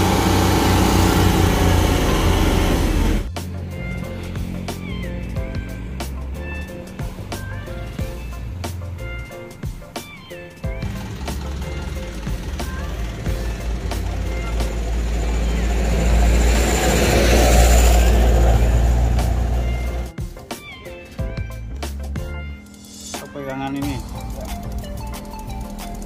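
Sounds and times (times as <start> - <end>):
rushing noise: 0.0 - 4.9, 10.9 - 20.1
background music with bass line: 0.0 - 26.0.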